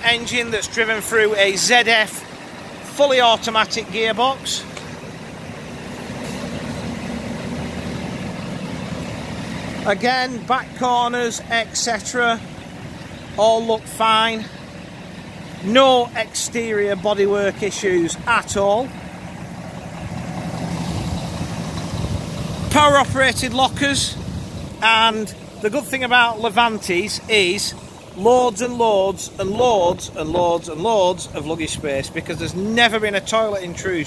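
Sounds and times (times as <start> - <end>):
diesel coach engine idling: 0.0 - 34.0.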